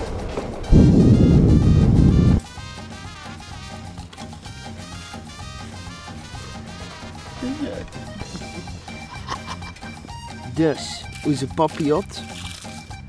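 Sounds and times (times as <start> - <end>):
rushing wind: 0.0 - 2.9
music with steady beat: 0.6 - 11.7.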